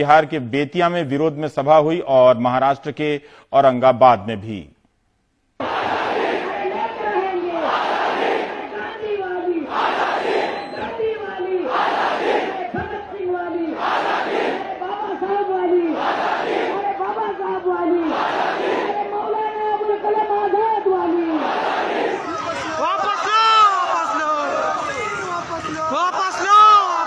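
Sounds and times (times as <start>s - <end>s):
crowd chanting in unison: 5.6s - 27.0s.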